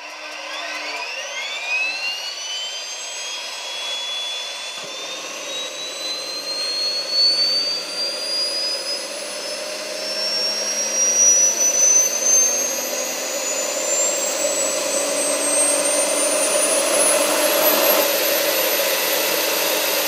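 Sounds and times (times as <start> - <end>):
turbine engine whine: 0.0 - 20.0.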